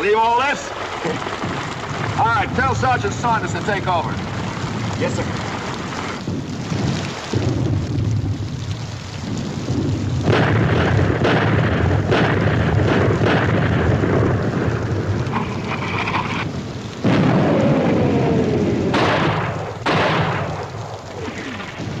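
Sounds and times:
sudden blasts: 0.0 - 22.0
rumble of shell explosions: 0.6 - 22.0.

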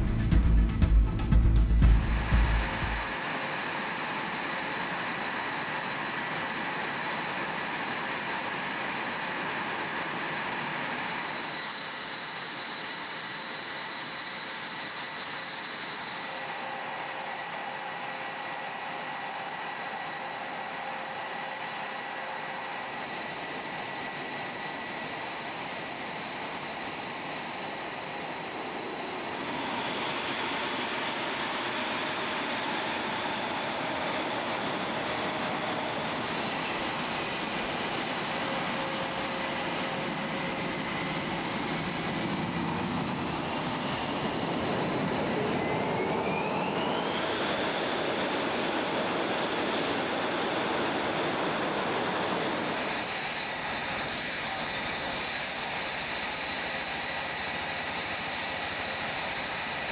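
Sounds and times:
jet engines idling: 0.0 - 59.9.

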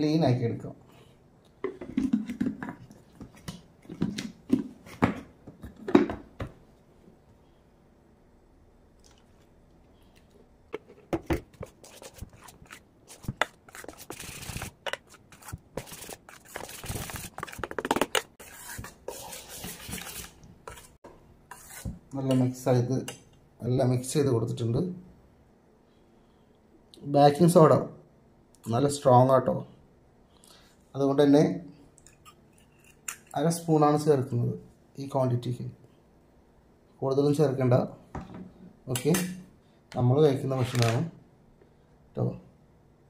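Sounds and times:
metal spoon stirring batter in pot: 10.8 - 23.4.

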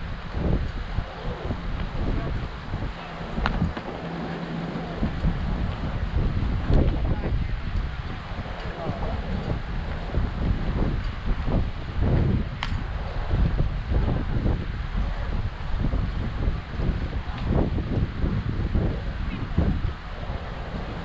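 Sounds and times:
wind buffeting microphone: 0.0 - 21.0
indistinct voices: 0.9 - 10.1
sharp click: 12.6 - 12.8.

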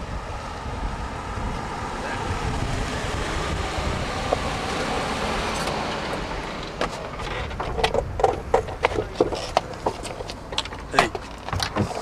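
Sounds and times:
car driving on asphalt: 0.0 - 12.0.

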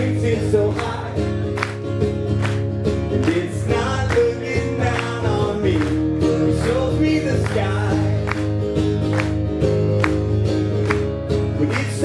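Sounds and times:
acoustic guitar strumming: 0.0 - 12.0
person singing: 3.1 - 8.5, 11.5 - 12.0.

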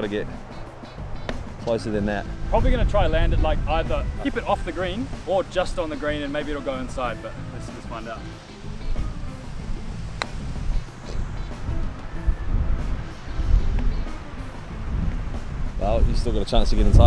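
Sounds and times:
background music: 0.0 - 17.0
wind rumbling on microphone: 0.0 - 17.0
golf club striking ball: 0.4 - 1.7, 9.8 - 12.1.

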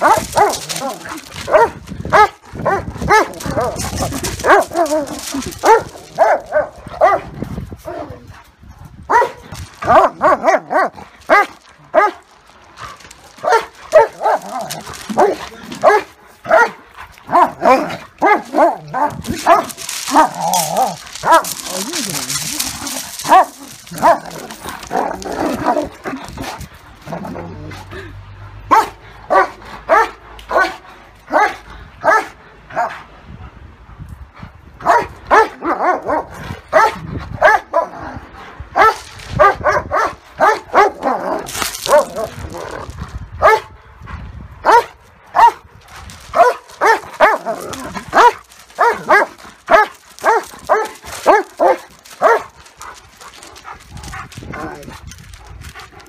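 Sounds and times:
dogs barking sharply: 0.0 - 7.4, 9.1 - 27.2, 28.7 - 33.0, 34.8 - 38.0, 38.7 - 43.8, 44.6 - 54.8.

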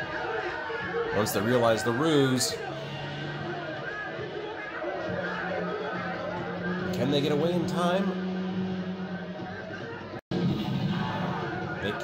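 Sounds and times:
voices calling out: 0.0 - 10.2.

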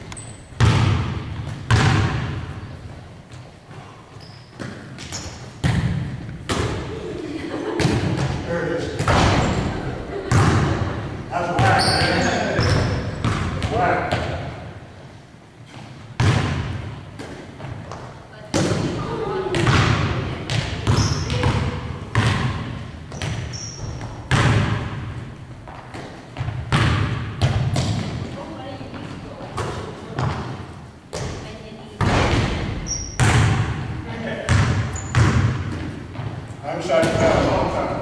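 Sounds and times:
basketball thumps echoing: 0.0 - 3.9, 4.5 - 7.1, 7.8 - 14.8, 15.7 - 38.0.

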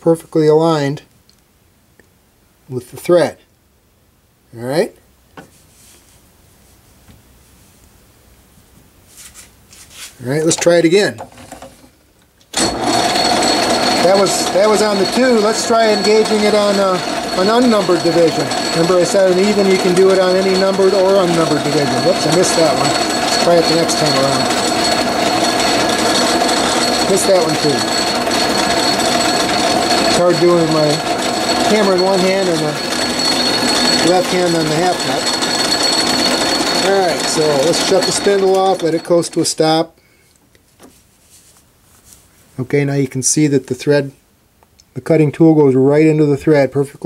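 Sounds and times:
metal lathe gear clatter: 12.6 - 39.8.

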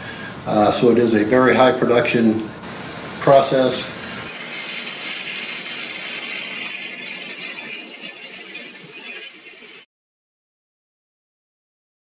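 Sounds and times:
hissing factory noise: 0.0 - 9.8.

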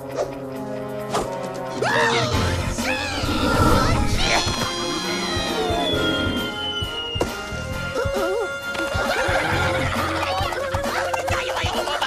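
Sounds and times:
action film music: 0.0 - 12.0.

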